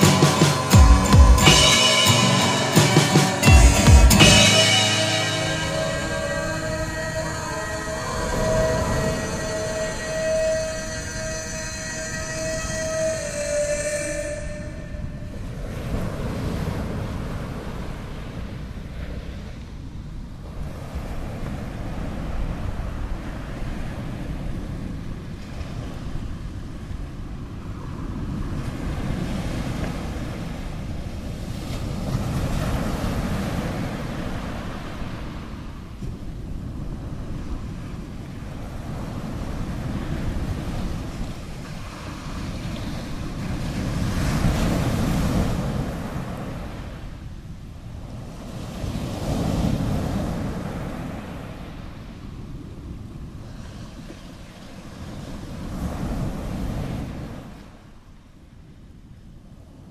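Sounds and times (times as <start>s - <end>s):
held music notes: 0.0s - 15.2s.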